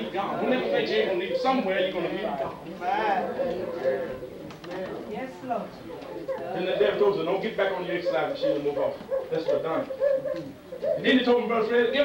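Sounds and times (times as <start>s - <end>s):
man preaching into a microphone: 0.0s - 2.6s, 6.5s - 10.0s, 11.0s - 12.0s.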